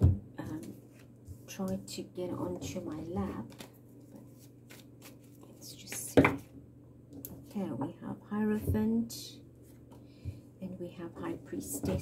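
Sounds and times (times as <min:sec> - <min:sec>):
cards rustling and clicking: 0:03.4 - 0:05.4.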